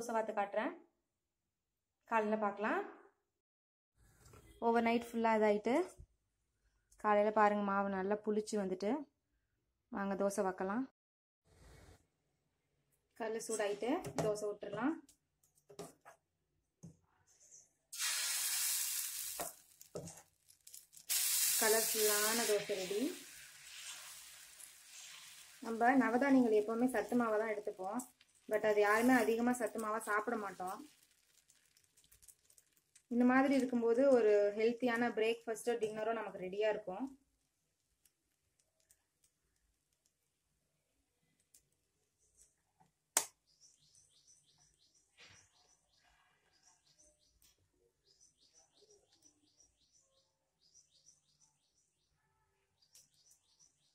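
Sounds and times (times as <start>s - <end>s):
batter sizzling on hot pan: 18.0s - 33.7s
ladle spreading batter sizzles: 18.0s - 33.8s
small bird chirping: 43.4s - 53.9s.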